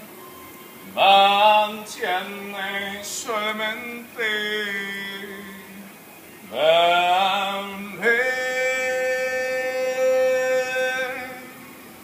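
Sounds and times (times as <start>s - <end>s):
man singing a long high note: 1.0s - 5.9s, 6.5s - 11.7s.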